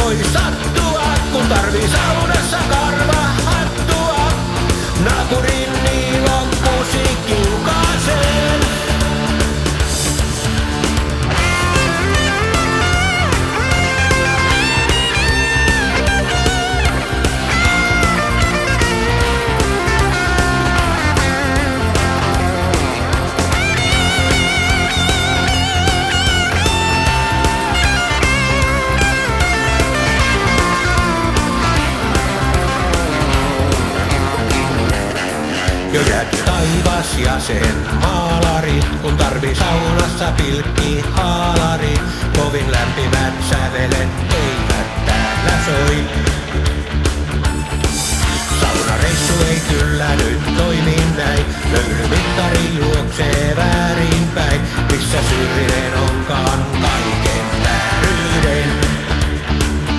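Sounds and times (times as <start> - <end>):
bass and drums: 0.0 - 59.9
lead electric guitar: 0.0 - 59.9
rock band instrumental: 0.0 - 59.9.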